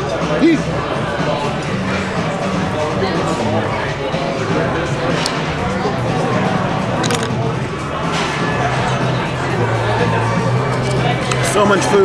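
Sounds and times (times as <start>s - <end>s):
background music: 0.0s - 12.0s
diners chattering: 0.0s - 12.0s.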